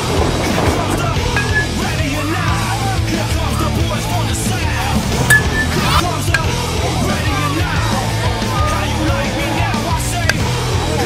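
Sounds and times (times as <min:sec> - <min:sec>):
rock music: 0:00.0 - 0:11.0.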